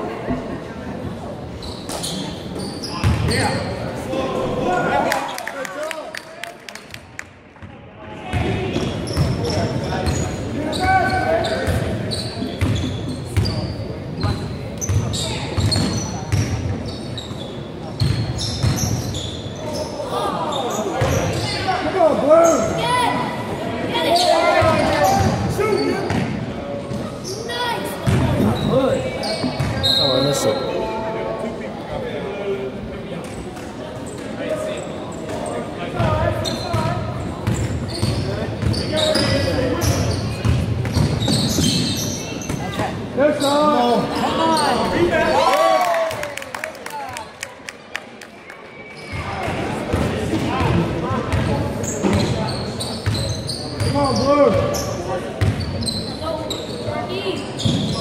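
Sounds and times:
players and spectators shouting: 43.3 - 46.4.

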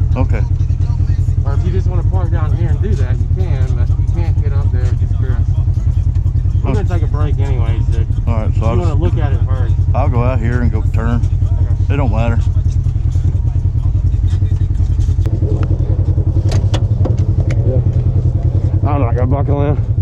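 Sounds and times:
engine rumbling at low revs: 0.0 - 20.0
people talking: 0.0 - 20.0.

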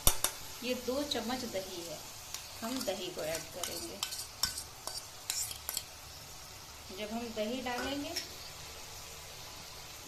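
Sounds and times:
paste sizzling in oil: 0.0 - 10.0
spatula scraping metal bowl: 2.7 - 5.9.

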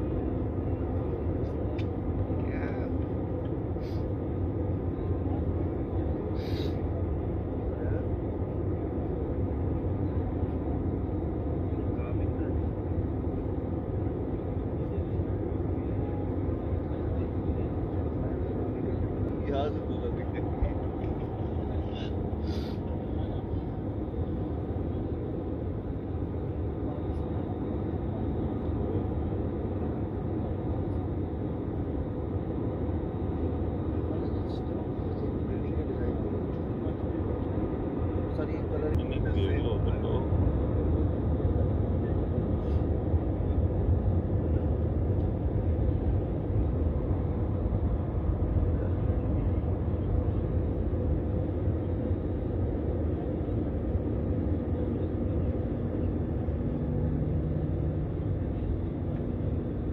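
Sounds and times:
jet engines and airflow rumble: 0.0 - 59.9
low hum: 0.0 - 59.9.

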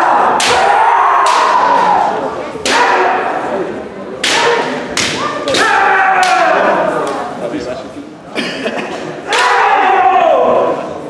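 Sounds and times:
people yelling overlapping: 0.0 - 7.1, 9.3 - 10.9.

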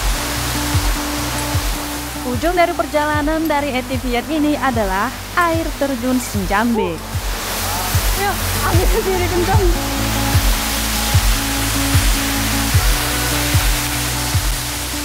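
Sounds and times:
background music with beat: 0.0 - 15.0
waterfall rushing: 0.0 - 15.0.

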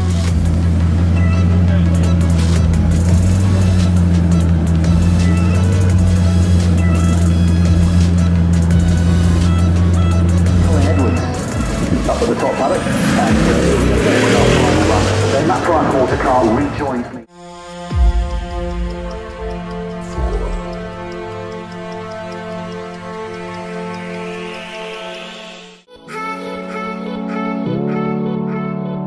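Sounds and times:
rough noisy engine: 0.0 - 17.3
car engine low drone: 0.0 - 25.8
background music: 0.0 - 29.0.

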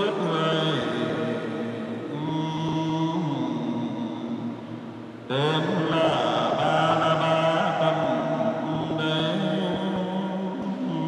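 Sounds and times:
man chanting in a church: 0.0 - 11.0.

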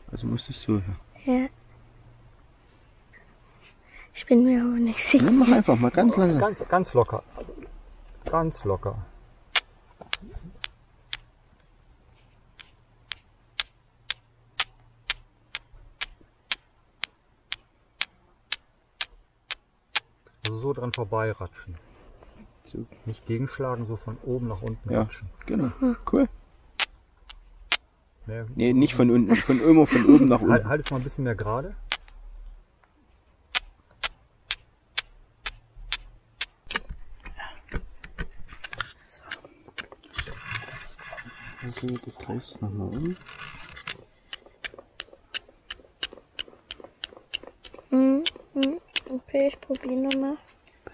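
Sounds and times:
steel striker clicking on flint: 9.5 - 11.8, 12.5 - 21.1, 26.8 - 27.9, 31.9 - 32.2, 33.5 - 37.0, 43.3 - 50.3
fire striker scraping flint: 31.9 - 32.2, 33.5 - 42.2, 42.8 - 50.2.

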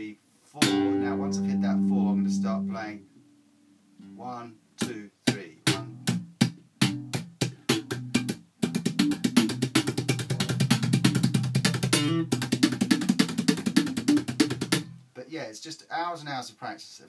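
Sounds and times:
slap bass guitar: 0.6 - 3.0, 5.6 - 15.0.

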